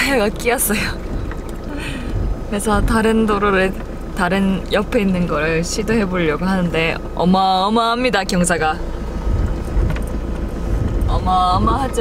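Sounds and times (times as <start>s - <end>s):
vehicle rumbling on dirt track: 0.0s - 12.0s.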